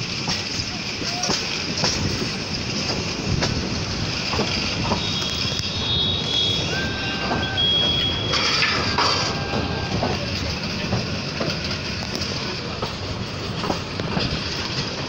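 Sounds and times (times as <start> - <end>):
train wheels rumbling on rails: 0.0 - 15.0
high steady squeals: 3.8 - 10.4.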